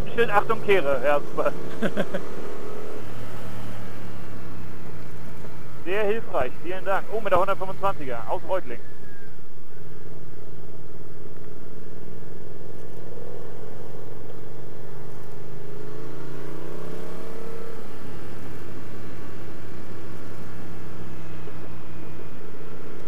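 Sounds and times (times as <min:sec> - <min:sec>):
motorcycle engine accelerating: 0:00.0 - 0:08.0, 0:08.8 - 0:23.0.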